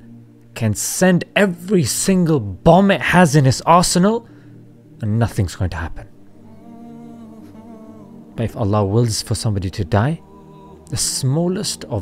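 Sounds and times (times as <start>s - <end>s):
person humming: 6.4s - 8.4s, 10.2s - 11.0s.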